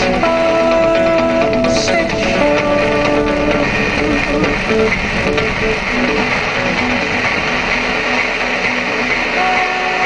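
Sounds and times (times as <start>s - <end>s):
music from car radio: 0.0s - 10.0s.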